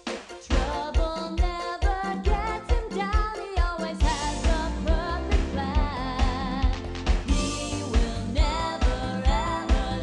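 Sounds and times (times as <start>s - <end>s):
upbeat pop backing music: 0.0s - 10.0s
person singing: 0.4s - 10.0s.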